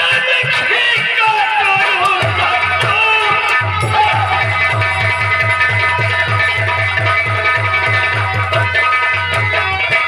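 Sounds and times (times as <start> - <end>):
fast drum beat: 0.0 - 10.0.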